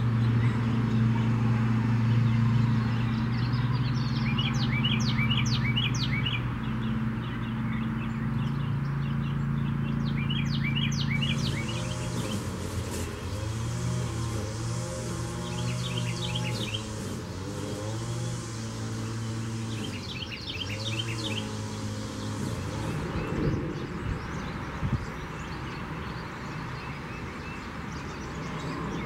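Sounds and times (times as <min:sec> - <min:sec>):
songbirds chirping: 0:00.0 - 0:29.0.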